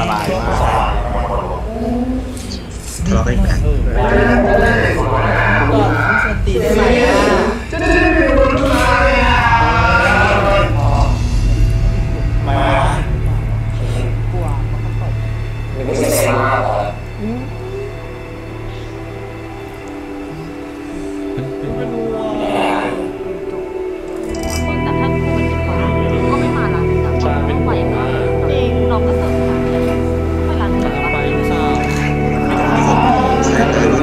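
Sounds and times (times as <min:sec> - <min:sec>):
low background rumble: 0:00.0 - 0:34.0
low drone background music: 0:00.0 - 0:34.0
voices: 0:00.0 - 0:34.0
person speaking: 0:02.5 - 0:11.1, 0:20.3 - 0:23.2.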